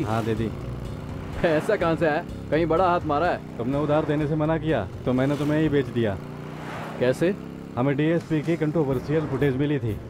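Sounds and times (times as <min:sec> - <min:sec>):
men talking: 0:00.0 - 0:00.6, 0:01.3 - 0:06.2, 0:07.0 - 0:10.0
motorcycle engine running: 0:00.0 - 0:10.0.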